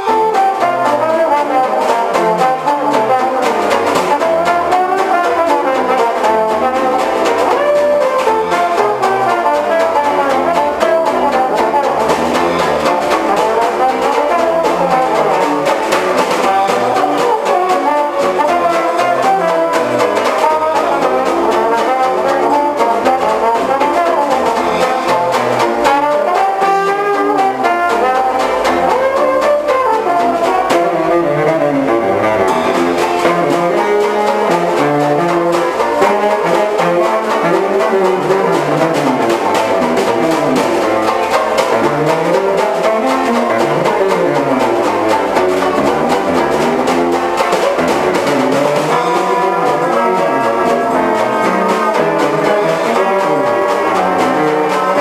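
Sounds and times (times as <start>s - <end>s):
dixieland band playing: 0.0s - 55.0s
trombone solo: 0.0s - 55.0s.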